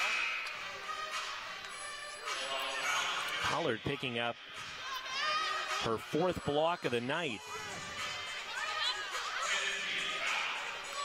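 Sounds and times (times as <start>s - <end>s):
music playing in a hall: 0.0s - 11.0s
crowd murmuring and calling out: 2.4s - 11.0s.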